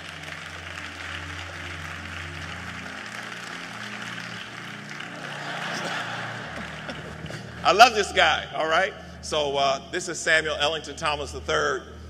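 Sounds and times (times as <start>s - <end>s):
soft sustained keyboard chords: 0.0s - 12.0s.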